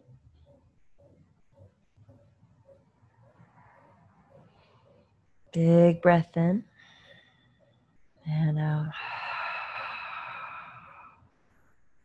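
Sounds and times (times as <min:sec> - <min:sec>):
woman exhaling: 0:09.0 - 0:11.2.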